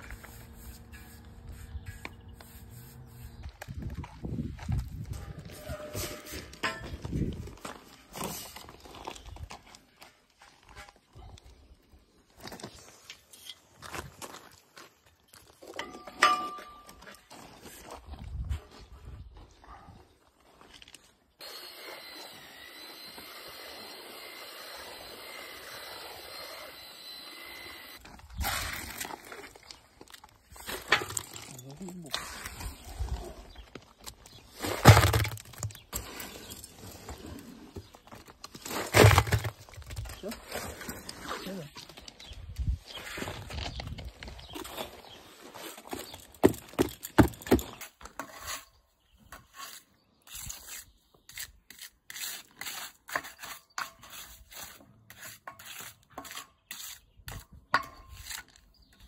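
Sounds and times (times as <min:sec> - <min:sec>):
trowel scraping wet concrete: 0:00.0 - 0:03.6, 0:05.2 - 0:06.8, 0:30.5 - 0:33.6, 0:47.6 - 0:59.0
electric paddle mixer whirring: 0:21.4 - 0:28.0.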